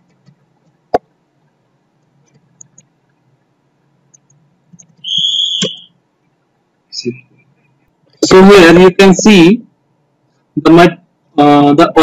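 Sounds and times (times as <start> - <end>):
high-pitched steady beep: 5.0 - 5.9.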